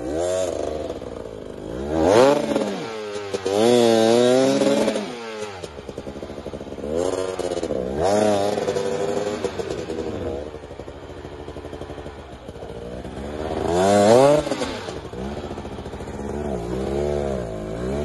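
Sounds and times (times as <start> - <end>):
motorcycle engine revving: 0.0 - 18.0.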